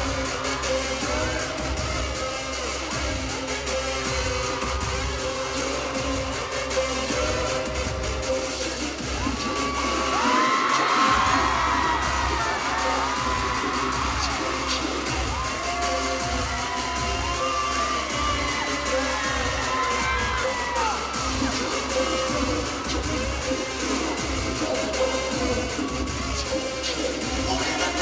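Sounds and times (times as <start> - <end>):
crowd screaming and cheering: 0.0 - 28.0
heavy bass beat: 0.0 - 28.0
pop song over sound system: 0.0 - 28.0.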